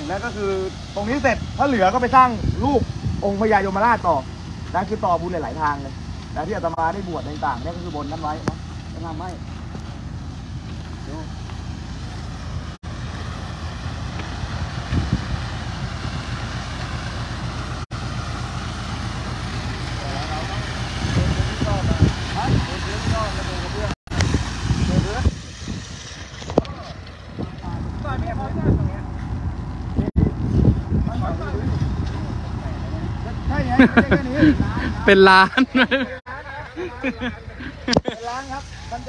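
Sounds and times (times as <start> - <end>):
voices talking: 0.0 - 12.4, 18.2 - 39.0
wet concrete sliding down chute: 0.0 - 29.0.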